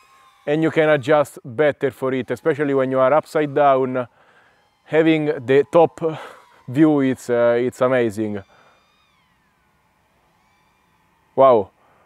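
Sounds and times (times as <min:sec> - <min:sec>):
faint thin whine: 0:00.0 - 0:12.0.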